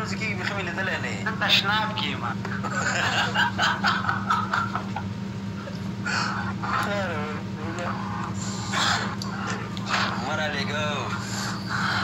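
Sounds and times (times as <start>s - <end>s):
high rising whine-like voice: 6.0s - 12.0s.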